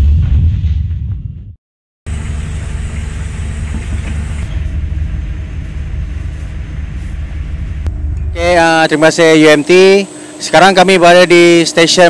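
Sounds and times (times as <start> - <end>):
ship engines humming: 2.1 - 12.0.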